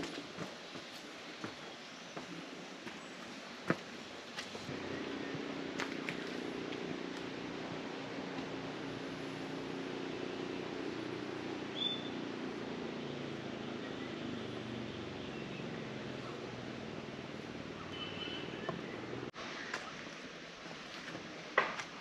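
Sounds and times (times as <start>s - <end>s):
steady low hum: 0.0s - 17.8s.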